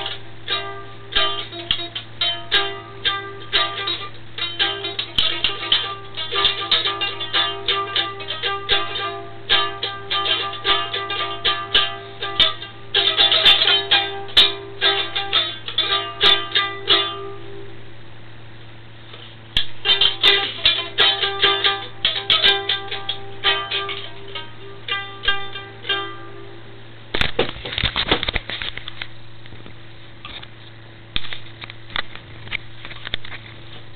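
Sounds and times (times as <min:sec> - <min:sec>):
toy guitar plucked notes: 0:00.0 - 0:17.7, 0:19.6 - 0:26.7
steady low hum: 0:00.0 - 0:33.9.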